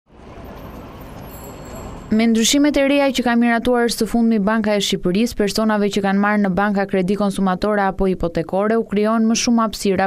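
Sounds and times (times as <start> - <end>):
distant city traffic hum: 0.1 - 10.0.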